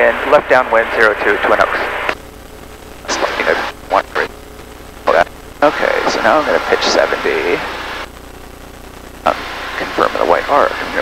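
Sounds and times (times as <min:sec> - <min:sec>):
voices: 0:03.0 - 0:04.3, 0:05.1 - 0:08.0, 0:09.3 - 0:11.0.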